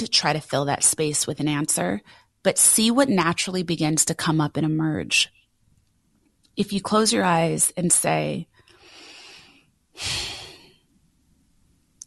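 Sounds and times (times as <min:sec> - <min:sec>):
person breathing into microphone: 0:08.6 - 0:10.8.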